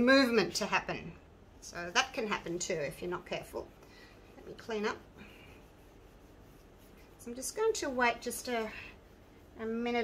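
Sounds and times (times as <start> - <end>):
low room hiss: 0.0 - 10.0
tissue rubbing on a mat: 1.6 - 10.0.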